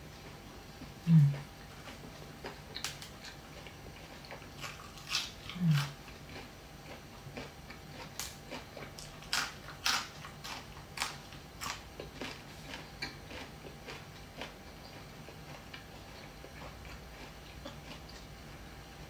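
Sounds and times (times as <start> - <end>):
chewing crisp leafy greens: 0.0 - 19.0
short low vocal sound: 1.0 - 1.4.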